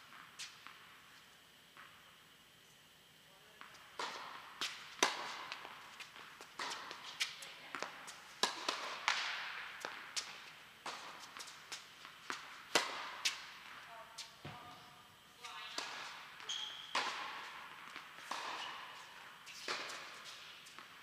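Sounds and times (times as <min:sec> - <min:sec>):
tennis balls struck and bouncing: 0:03.6 - 0:14.8, 0:15.6 - 0:21.0.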